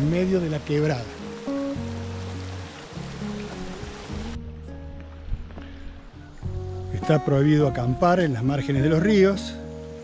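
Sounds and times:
water rushing in channel: 0.0s - 5.5s
background music with held notes: 0.0s - 10.0s.

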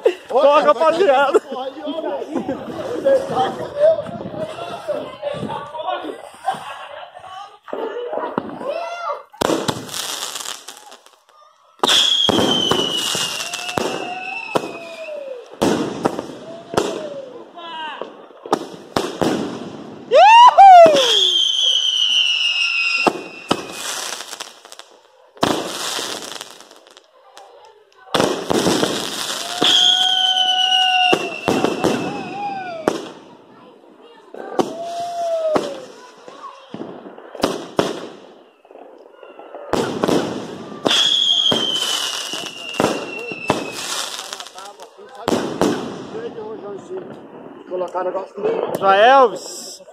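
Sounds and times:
fireworks bangs and crackling: 0.0s - 49.9s
whistling firework shells: 10.4s - 17.2s, 20.7s - 24.4s, 28.8s - 33.1s, 38.2s - 44.6s.

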